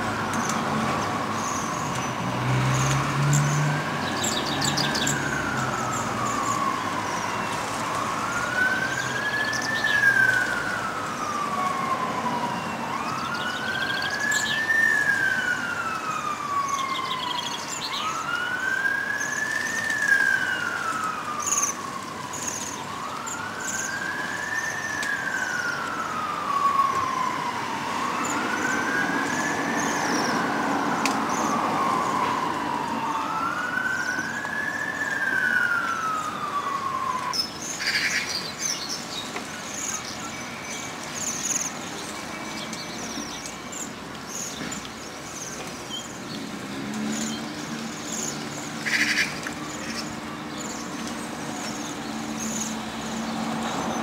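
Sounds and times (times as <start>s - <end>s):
emergency siren wailing: 0.0s - 54.0s.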